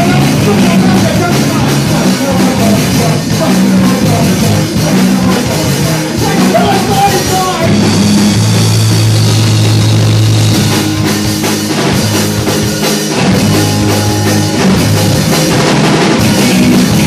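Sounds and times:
bass guitar: 0.0 - 17.0
drum kit: 0.0 - 17.0
electric guitar: 0.0 - 17.0.

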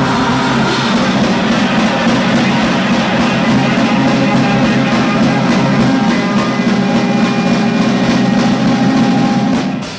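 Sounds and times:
band playing distorted music: 0.0 - 9.9
drums hitting: 0.0 - 9.9.

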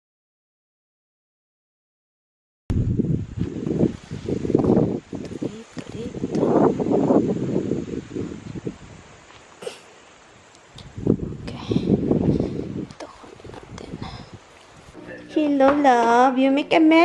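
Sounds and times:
wind buffeting microphone: 2.7 - 9.4, 10.6 - 15.0
rustling of plants: 3.2 - 15.6.

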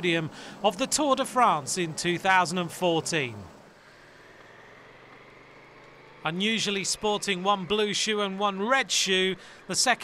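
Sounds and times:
faint engine hum: 0.0 - 10.0.

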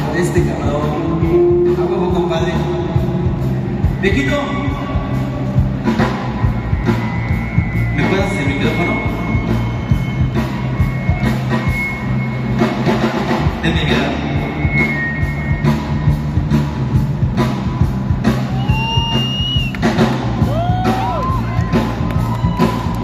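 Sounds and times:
drum kit beat: 0.0 - 23.0
electric bass: 0.0 - 23.0.

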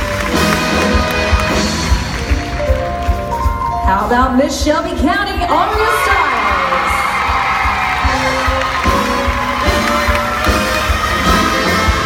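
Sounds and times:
audience cheering and applauding: 0.0 - 3.6, 5.6 - 12.0
stage music with low beat: 0.0 - 12.0.

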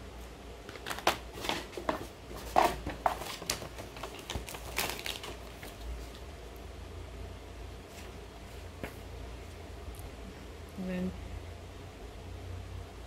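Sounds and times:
snack wrappers crinkling: 0.6 - 6.2.

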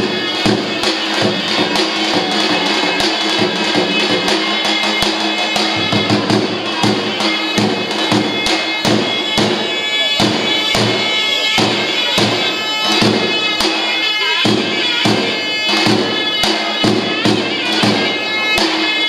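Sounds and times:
large drum strokes: 0.0 - 18.8
shawms playing reedy melody: 0.0 - 19.0.

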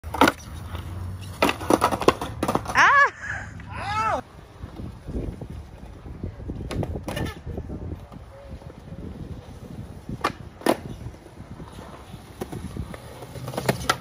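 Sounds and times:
skateboard wheels rolling on concrete: 0.0 - 14.0.

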